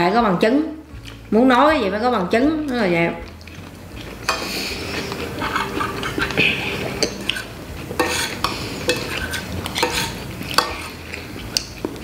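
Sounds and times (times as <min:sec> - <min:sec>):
cutlery scraping ceramic plates: 0:03.5 - 0:12.0.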